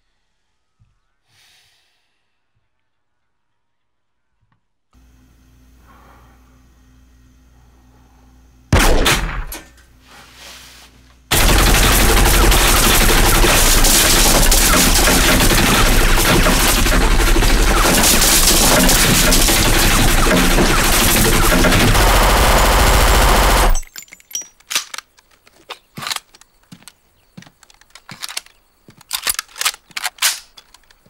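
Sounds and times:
low steady hum: 5.0 - 23.9
automatic gunfire: 8.8 - 9.5, 11.3 - 23.8.

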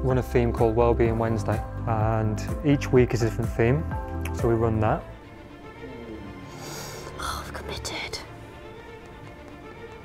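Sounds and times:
background music with violin: 0.0 - 10.0
breathy sigh: 5.7 - 7.4.

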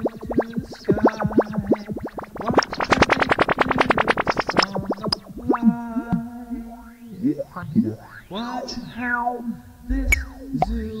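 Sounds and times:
stuttering synthesizer notes: 0.0 - 9.0
gliding synthesizer tones: 0.0 - 11.0.

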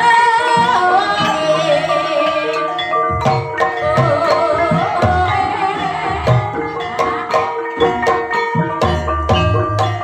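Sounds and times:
woman singing gliding voice: 0.0 - 2.8, 3.8 - 7.6
kettle gongs and metallophones ringing: 0.0 - 10.0.

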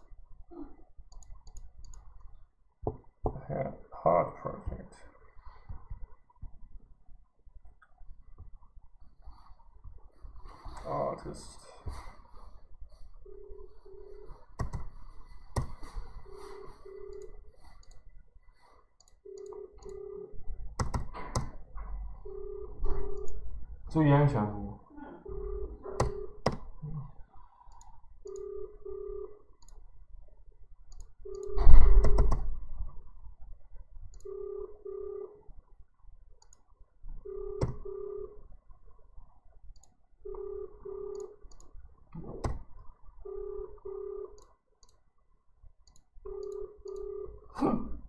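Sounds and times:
telephone ringback tone: 13.2 - 14.3, 16.2 - 17.4, 19.2 - 20.4, 22.2 - 23.3, 28.3 - 29.4, 34.2 - 35.4, 37.2 - 38.4, 40.3 - 41.4, 43.2 - 44.4, 46.3 - 47.5
computer keyboard clicks: 14.6 - 14.9, 20.8 - 21.6, 26.0 - 26.7, 30.9 - 32.5.

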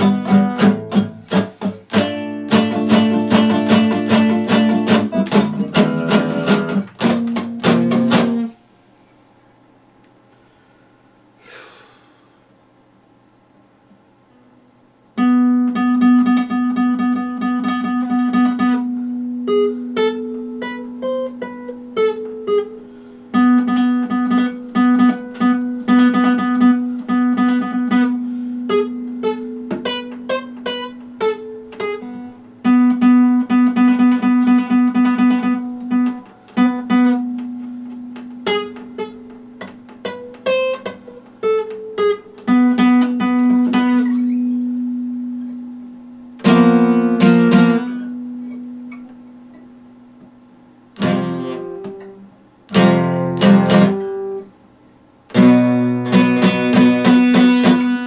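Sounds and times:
strummed guitar chord: 0.0 - 8.6, 15.2 - 49.7, 51.0 - 54.5, 55.3 - 58.0
fingerpicked acoustic guitar: 0.0 - 9.3, 13.8 - 54.6, 55.3 - 58.0.

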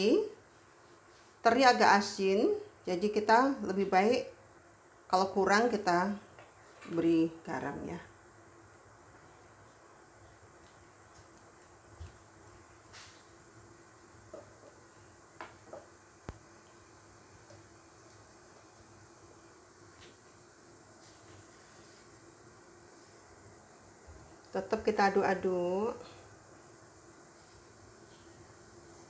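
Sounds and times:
faint room hum: 0.0 - 29.0.

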